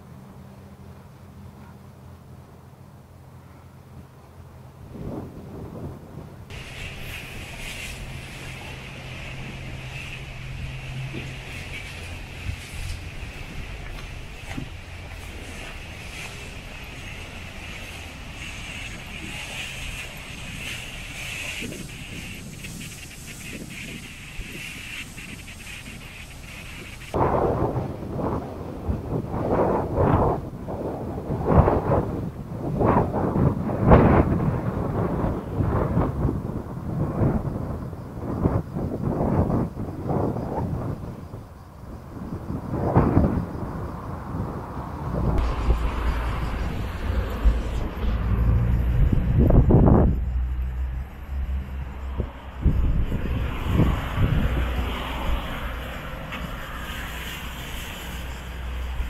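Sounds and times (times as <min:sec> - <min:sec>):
wind buffeting microphone: 0:03.2 - 0:59.0
low rumble: 0:32.9 - 0:59.0.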